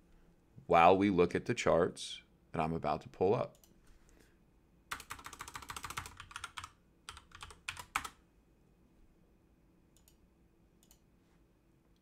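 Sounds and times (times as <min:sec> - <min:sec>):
computer keyboard typing: 0:04.9 - 0:08.2.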